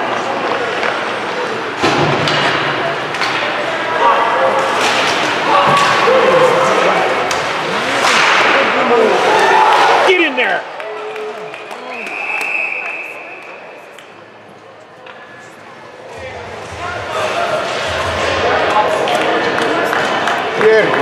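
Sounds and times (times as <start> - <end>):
crowd chatter: 0.0 - 21.0
hockey sticks and puck clacking: 1.8 - 3.7, 4.6 - 6.1, 7.2 - 9.9, 17.6 - 21.0
shouted voices: 3.8 - 7.2.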